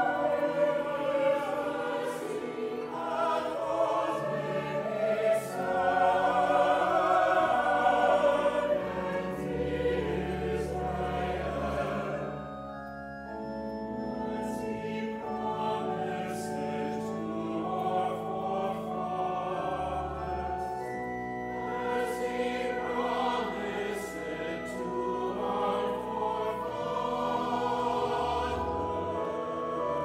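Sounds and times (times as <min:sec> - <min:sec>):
church choir singing: 0:00.0 - 0:30.0.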